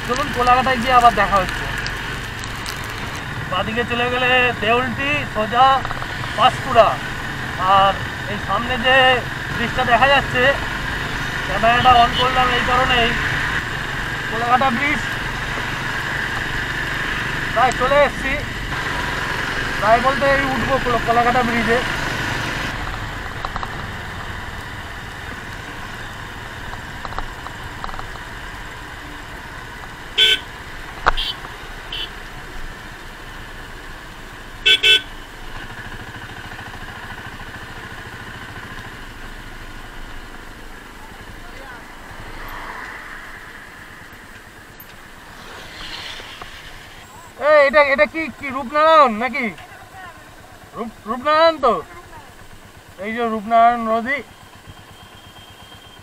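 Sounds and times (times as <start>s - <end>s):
motorcycle engine and wind: 0.0s - 32.8s, 35.5s - 47.5s
short horn toots: 34.6s - 35.1s.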